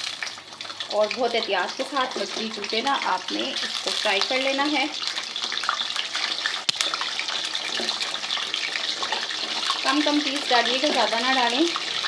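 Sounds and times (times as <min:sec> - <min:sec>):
fish sizzling in a pan: 0:00.0 - 0:12.0.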